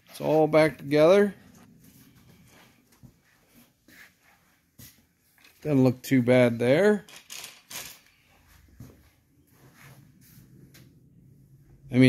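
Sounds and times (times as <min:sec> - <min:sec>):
footstep scuffs on concrete: 0:01.7 - 0:05.2
low hum: 0:08.4 - 0:12.0.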